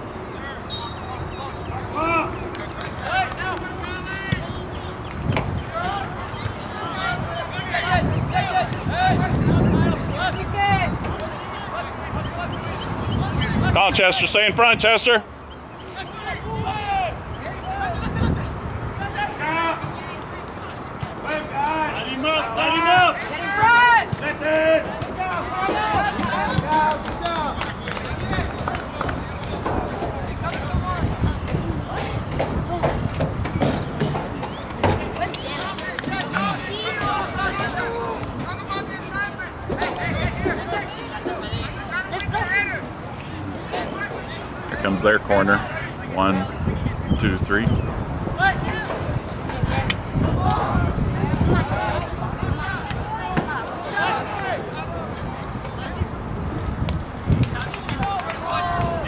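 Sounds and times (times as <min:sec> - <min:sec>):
players and spectators shouting: 0:00.0 - 0:56.3, 0:57.6 - 0:59.0
outdoor background noise: 0:00.0 - 0:59.0
people shouting: 0:15.9 - 0:18.2, 0:21.2 - 0:27.6, 0:34.8 - 0:42.8, 0:49.6 - 0:55.0.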